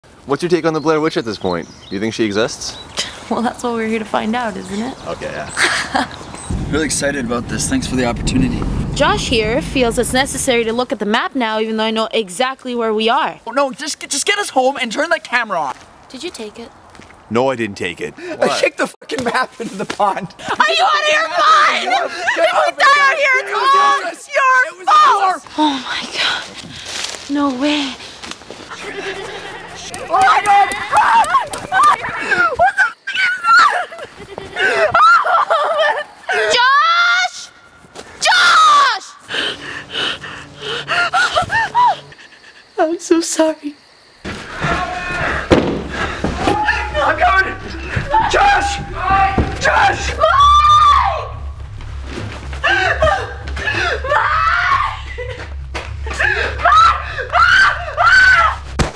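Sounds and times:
steady low hum: 6.5 - 11.1, 44.4 - 58.9
panicked screams: 20.6 - 25.4, 28.7 - 34.0, 34.6 - 37.4, 38.2 - 39.2, 44.3 - 51.5, 52.6 - 55.3, 56.1 - 58.8
running footsteps: 28.0 - 32.8, 44.2 - 58.9.

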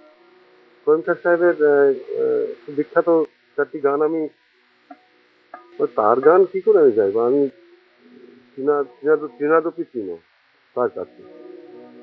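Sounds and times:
faint steady hiss: 0.0 - 12.0
man talking: 0.9 - 4.3, 5.8 - 7.5, 8.6 - 10.2, 10.8 - 11.1.

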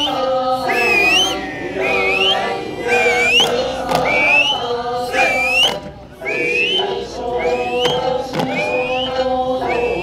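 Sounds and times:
group singing folk song: 0.0 - 10.0.

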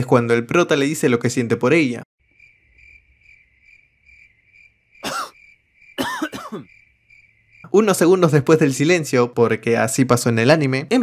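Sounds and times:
crickets chirping: 2.2 - 9.6.

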